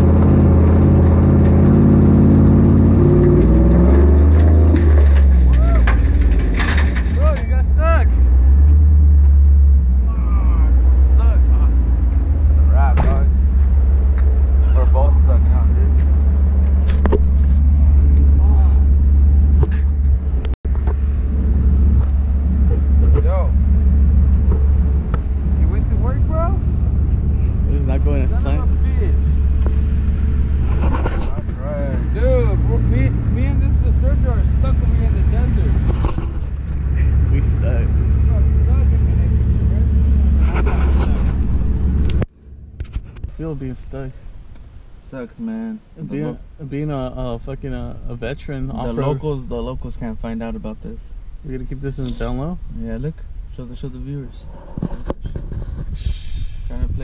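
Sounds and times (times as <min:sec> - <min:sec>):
truck engine running: 0:00.0 - 0:45.0
people talking: 0:05.5 - 0:05.9, 0:07.1 - 0:08.1, 0:10.1 - 0:11.8, 0:12.5 - 0:13.4, 0:14.6 - 0:16.1, 0:18.2 - 0:18.9, 0:23.0 - 0:23.6, 0:25.5 - 0:26.6, 0:27.6 - 0:29.4, 0:30.9 - 0:36.1, 0:37.0 - 0:41.2, 0:43.3 - 0:44.2, 0:45.0 - 0:54.4, 0:56.0 - 0:57.0.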